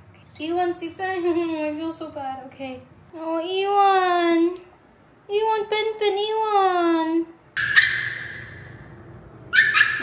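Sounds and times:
small dog whining: 9.6s - 10.0s.

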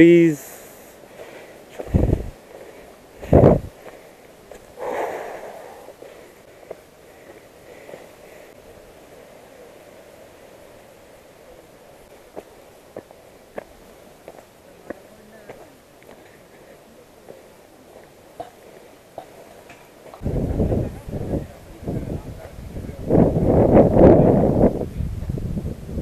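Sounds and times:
low steady rustle: 0.0s - 25.7s
footsteps on dirt trail: 1.1s - 8.6s, 12.0s - 20.2s
wind buffeting microphone: 1.7s - 2.4s, 3.2s - 3.9s, 20.2s - 26.0s.

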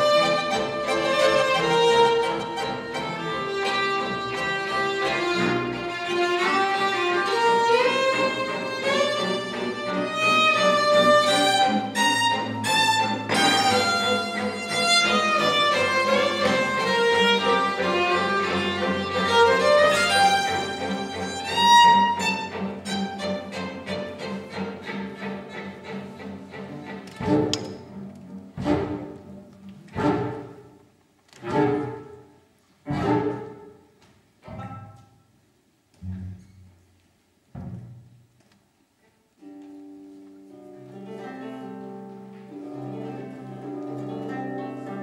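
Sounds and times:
bowed strings improvising: 0.0s - 35.0s
double bass: 36.0s - 36.8s.

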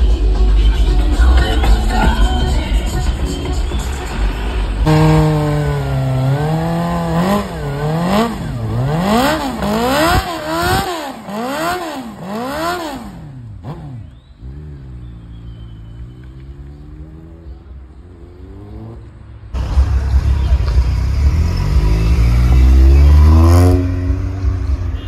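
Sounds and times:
motorcycle engine revving: 4.3s - 25.0s.

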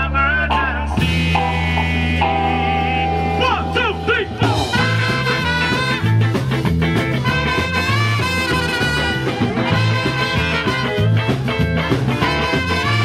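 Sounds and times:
drums: 0.0s - 13.0s
electric bass: 0.0s - 13.0s
trumpets and saxophone: 4.4s - 13.0s.

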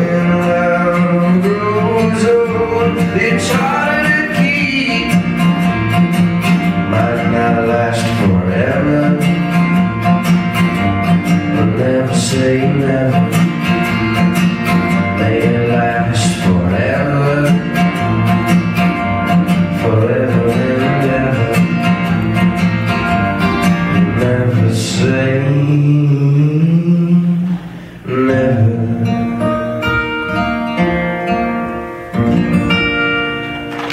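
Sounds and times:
acoustic guitar strumming: 0.0s - 33.9s.

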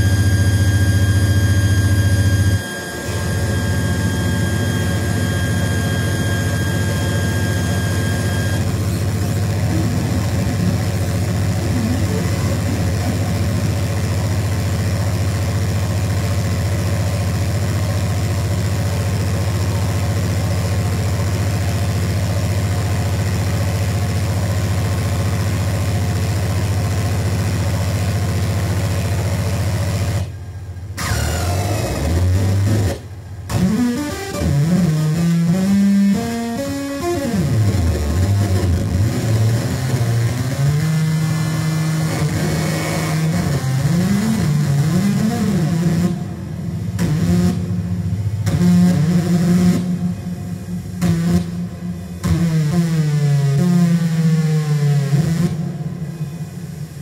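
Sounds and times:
distorted amplifier drone: 0.0s - 57.0s
high feedback whine: 0.0s - 57.0s.

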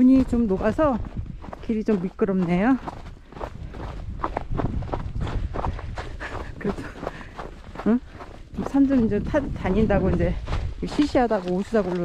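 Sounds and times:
footsteps on snow: 0.0s - 12.0s.

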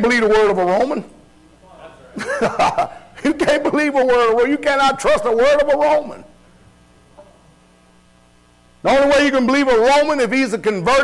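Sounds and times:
man speaking: 0.0s - 2.4s, 3.2s - 6.4s, 8.8s - 11.0s
faint electrical hum: 0.0s - 11.0s.

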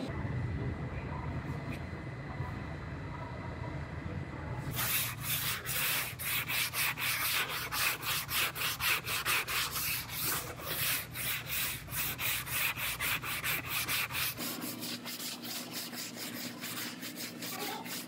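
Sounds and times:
sandpaper scraping filler: 4.7s - 18.0s.

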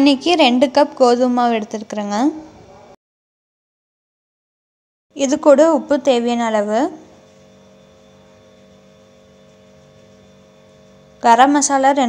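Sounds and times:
faint electrical hum: 5.2s - 12.0s.

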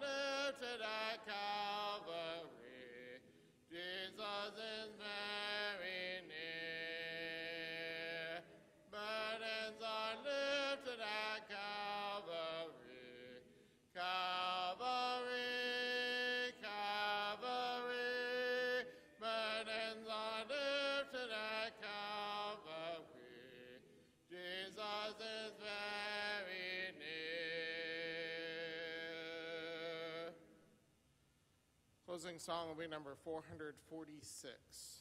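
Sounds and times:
congregation singing a hymn: 0.0s - 30.5s.

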